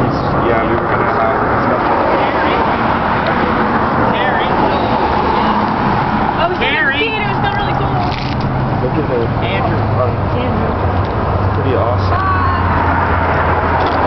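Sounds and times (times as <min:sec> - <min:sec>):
people talking: 0:00.0 - 0:05.6, 0:06.4 - 0:08.2, 0:08.8 - 0:10.8, 0:11.6 - 0:12.7
highway traffic noise: 0:00.0 - 0:14.0.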